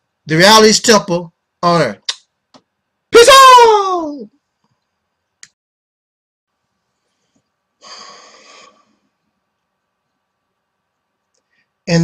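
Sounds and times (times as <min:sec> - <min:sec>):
man breathing loudly: 0:07.8 - 0:09.0.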